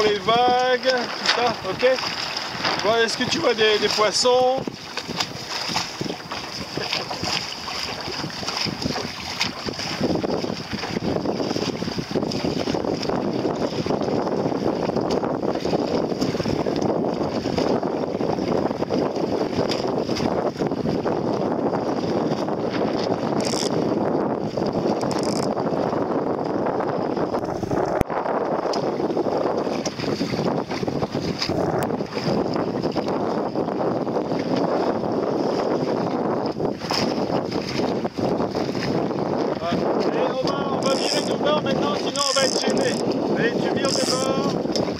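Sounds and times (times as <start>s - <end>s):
water splashing along boat: 0.0s - 44.9s
wind buffeting microphone: 0.0s - 44.9s.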